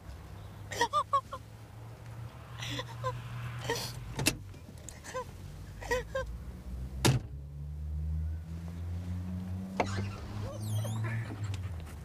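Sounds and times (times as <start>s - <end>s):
car engine humming: 0.0s - 12.0s
short squeaks: 9.8s - 11.4s.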